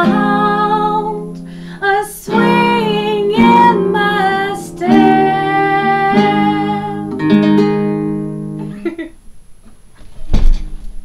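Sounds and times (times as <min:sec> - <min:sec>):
acoustic guitar chord ringing: 0:00.0 - 0:09.0
guitar being handled thumps: 0:09.6 - 0:11.0.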